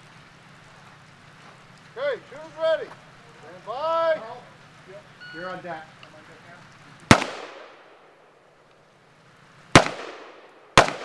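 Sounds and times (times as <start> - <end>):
outdoor ambient hum and hiss: 0.0 - 11.0.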